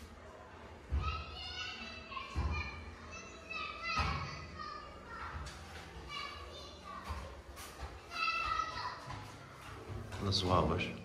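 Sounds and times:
children shouting at play: 0.8 - 10.0.

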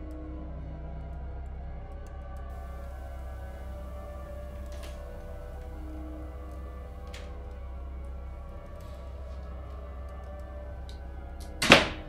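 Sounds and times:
low drone film score: 0.0 - 12.0.

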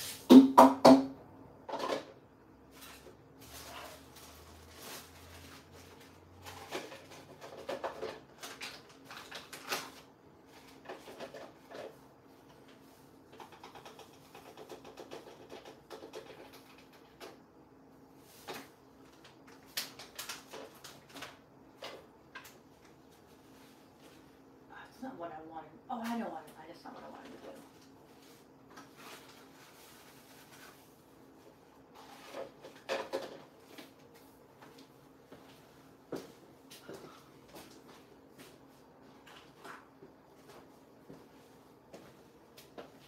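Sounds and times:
household items clicking and knocking: 6.4 - 10.0, 13.3 - 17.4, 32.2 - 33.9.

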